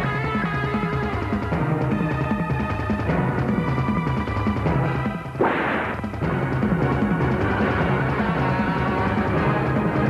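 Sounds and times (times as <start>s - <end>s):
dramatic film score music: 0.0s - 10.0s
fight hit effect: 5.4s - 6.2s.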